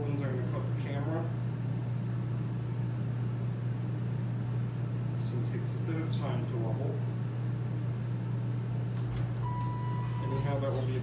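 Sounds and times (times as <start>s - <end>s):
elevator ventilation fan humming: 0.0s - 11.0s
elevator doors sliding open: 9.0s - 11.0s.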